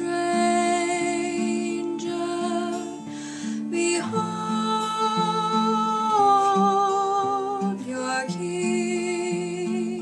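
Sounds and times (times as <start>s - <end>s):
acoustic guitar picking: 0.0s - 10.0s.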